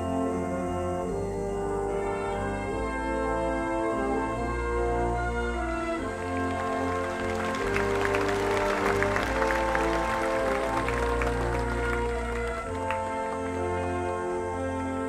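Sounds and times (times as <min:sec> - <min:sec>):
wind band holding chords: 0:00.0 - 0:15.0
audience applause: 0:05.5 - 0:14.2.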